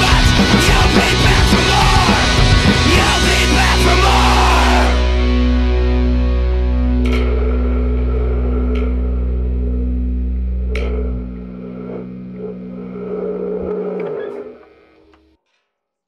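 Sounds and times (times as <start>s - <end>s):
amp hum: 0.0s - 15.3s
distorted guitar and bass ringing: 0.0s - 15.4s.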